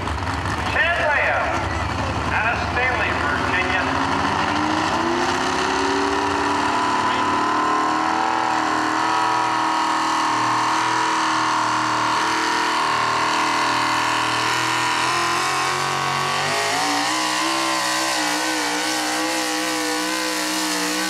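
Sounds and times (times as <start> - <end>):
truck engine revving: 0.0 - 21.0.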